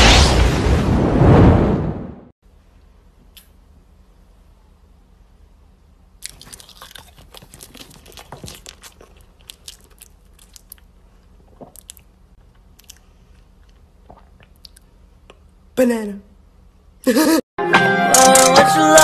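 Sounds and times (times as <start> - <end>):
faint low hum: 2.4 - 17.4
chewing banana mouth clicks: 6.2 - 10.9, 11.6 - 15.4.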